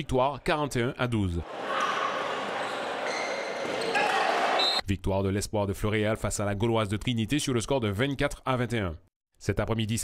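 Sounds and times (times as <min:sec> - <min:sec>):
echoing sports hall din: 0:01.4 - 0:04.8
shoe squeaks: 0:02.6 - 0:04.8.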